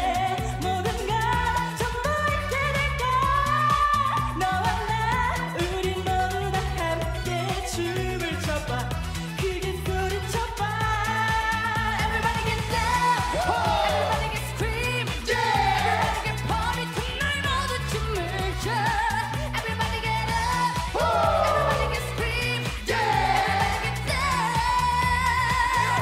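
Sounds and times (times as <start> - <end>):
group singing dance-pop song: 0.0 - 26.0
repeating bass line: 0.0 - 26.0.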